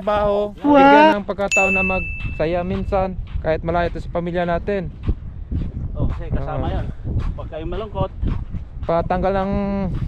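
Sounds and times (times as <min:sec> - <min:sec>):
men talking: 0:00.0 - 0:05.0, 0:05.9 - 0:08.2, 0:08.8 - 0:10.0
bright ding: 0:01.5 - 0:02.6.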